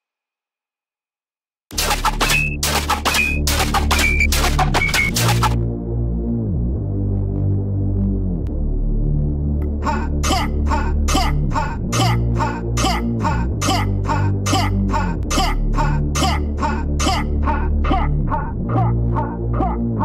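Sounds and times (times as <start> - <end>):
heavy synth bass with pitch drops: 1.7 - 20.0.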